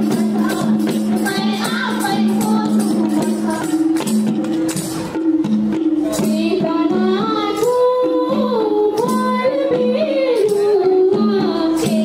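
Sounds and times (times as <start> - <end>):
percussion strikes: 0.0 - 12.0
woman singing folk melody: 6.3 - 12.0.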